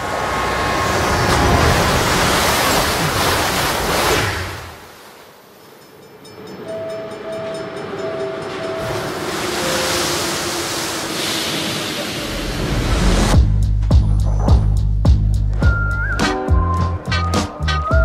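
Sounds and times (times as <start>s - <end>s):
passenger train rushing past: 0.0s - 3.2s, 6.3s - 13.4s
chime tones: 5.6s - 10.0s.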